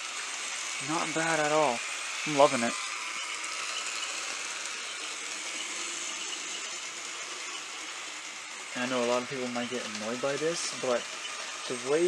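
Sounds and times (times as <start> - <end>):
model train running on track: 0.0 - 12.0.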